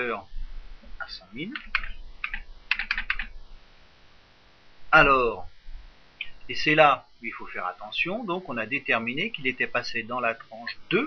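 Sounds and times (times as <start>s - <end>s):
computer keyboard typing: 1.5s - 3.3s.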